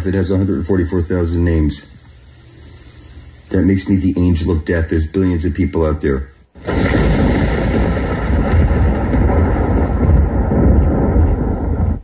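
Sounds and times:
deep rumbling roar: 6.6 - 12.0.

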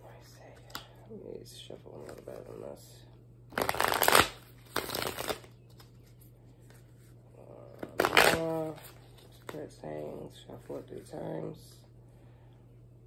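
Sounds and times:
cards shuffling: 3.5 - 7.1, 7.8 - 9.7.

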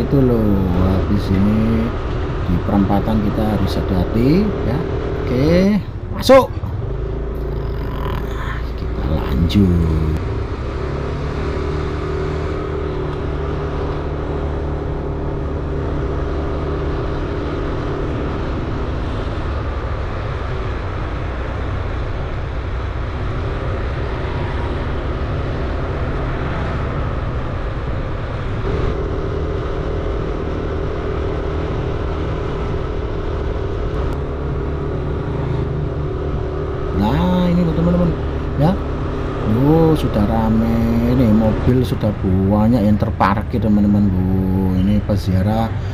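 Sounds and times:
road and air noise: 0.0 - 45.9.

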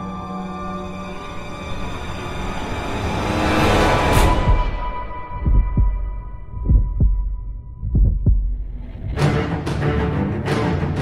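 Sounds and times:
heartbeat thumps: 4.4 - 4.8, 5.4 - 9.2.

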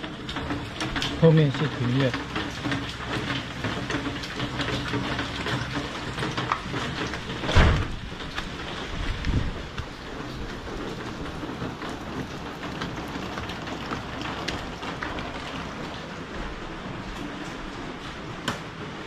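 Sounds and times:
rain drop clicks: 0.0 - 19.0
steady rain: 0.0 - 19.0.

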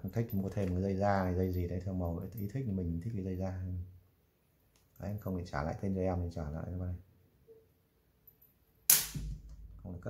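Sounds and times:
sharp plastic clack: 8.9 - 9.6.

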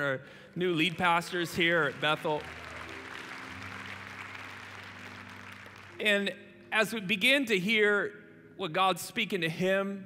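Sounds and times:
congregation applauding: 0.5 - 6.3.

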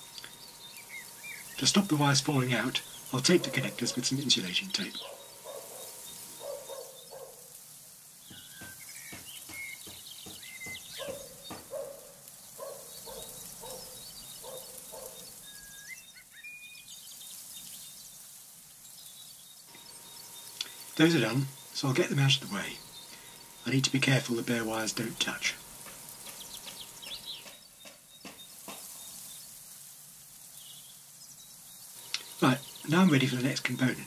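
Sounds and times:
bird chirps: 0.0 - 7.6, 8.2 - 29.6, 30.5 - 34.0.

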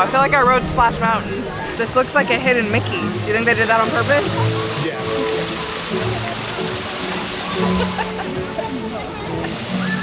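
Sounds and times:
fountain water splashing: 0.0 - 10.0
music playing: 0.0 - 10.0.

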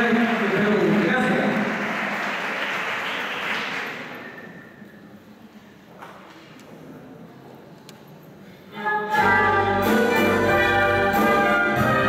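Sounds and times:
audience applause: 0.0 - 4.2.

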